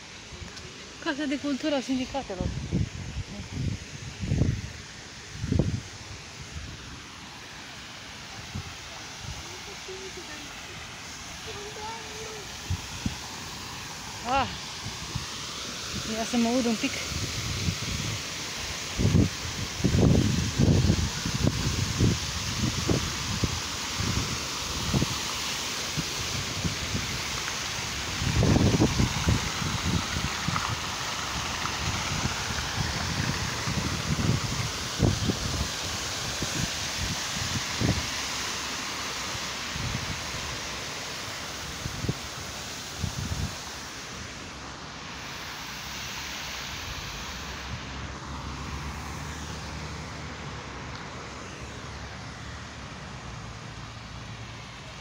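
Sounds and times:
fountain jets splashing: 0.0s - 55.0s
wind buffeting microphone: 2.2s - 4.8s, 19.0s - 25.2s, 28.1s - 38.1s.

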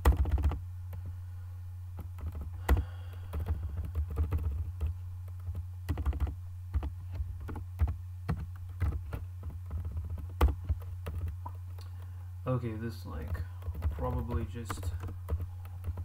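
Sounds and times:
computer keyboard typing: 0.0s - 0.6s, 2.0s - 12.1s, 13.1s - 16.0s
steady low hum: 0.0s - 16.0s.

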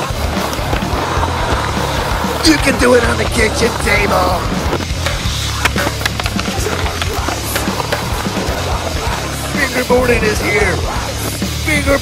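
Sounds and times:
background music with steady bass: 0.0s - 12.0s.

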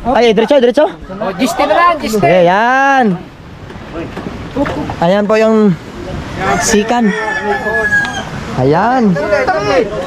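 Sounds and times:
men shouting drawn-out calls: 5.8s - 10.0s.

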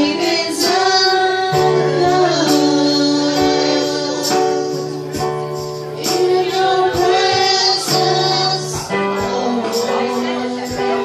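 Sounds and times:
women singing: 0.0s - 5.2s, 5.9s - 11.0s
keyboard accompaniment with beat: 0.0s - 11.0s.

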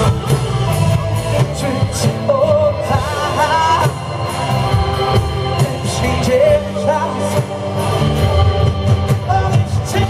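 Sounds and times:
man singing: 0.0s - 4.5s, 5.2s - 10.0s
drums: 0.0s - 10.0s.

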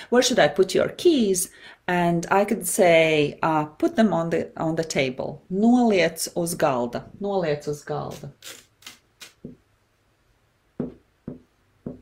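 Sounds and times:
marker knocking on whiteboard: 9.4s - 9.6s, 10.8s - 12.0s.

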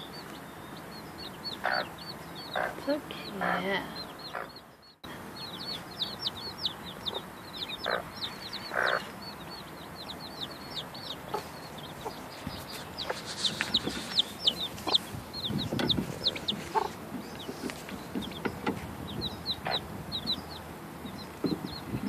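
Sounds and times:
chicks peeping: 0.0s - 22.0s
hen clucking: 0.0s - 22.0s.

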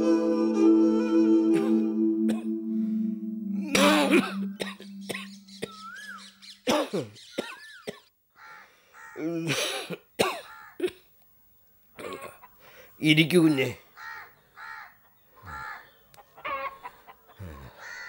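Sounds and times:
held low music note: 0.0s - 6.2s
person coughing: 3.6s - 5.8s, 9.4s - 10.9s.

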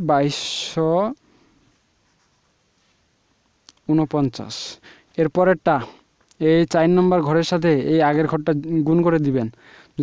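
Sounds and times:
marker scratching on paper: 2.0s - 2.6s
person speaking: 3.7s - 10.0s.

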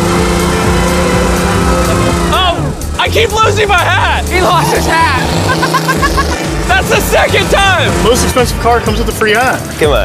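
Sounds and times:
car engine running steadily: 0.0s - 9.8s
music with steady beat: 0.0s - 10.0s.

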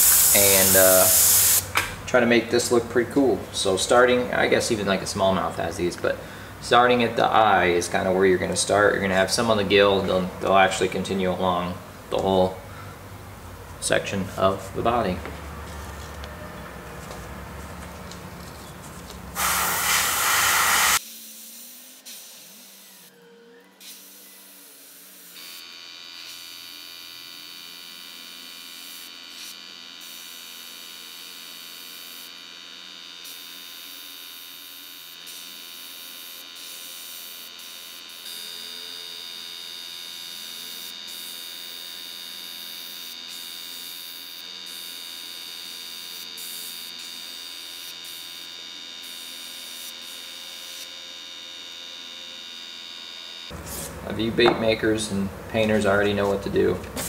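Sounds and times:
airbrush compressor motor humming: 0.0s - 1.8s, 12.2s - 57.0s.

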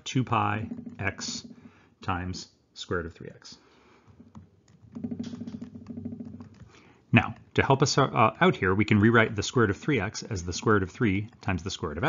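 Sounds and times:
stylus tapping and scratching: 0.0s - 2.1s, 3.9s - 12.0s.

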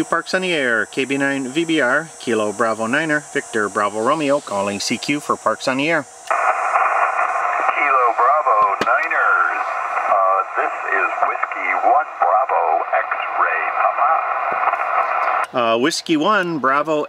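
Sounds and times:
radio voices calling: 0.0s - 15.8s
receiver noise: 0.0s - 15.8s.

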